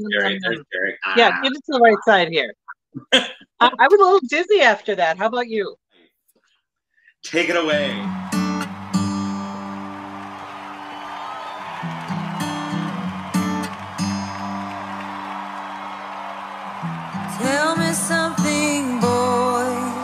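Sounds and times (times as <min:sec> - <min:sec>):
woman singing: 0:00.0 - 0:00.6, 0:01.2 - 0:02.5, 0:17.3 - 0:20.0
strummed acoustic guitar chords: 0:07.6 - 0:10.2.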